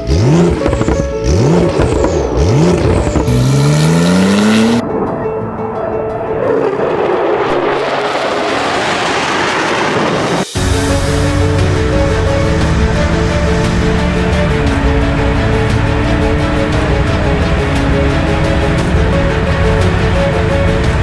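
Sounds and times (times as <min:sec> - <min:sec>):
car engine revving: 0:00.0 - 0:04.9, 0:06.4 - 0:21.0
loud rushing noise: 0:01.6 - 0:21.0.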